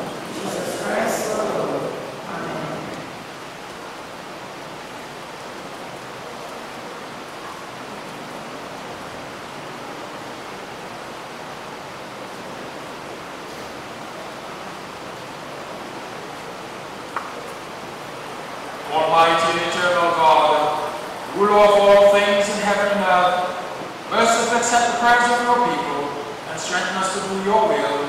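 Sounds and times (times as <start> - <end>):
steady room hiss: 0.0 - 28.0
voice trailing off: 18.9 - 23.4.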